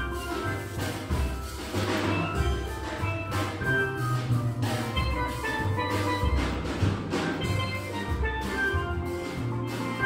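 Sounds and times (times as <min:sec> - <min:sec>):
steel band playing: 0:00.0 - 0:10.0.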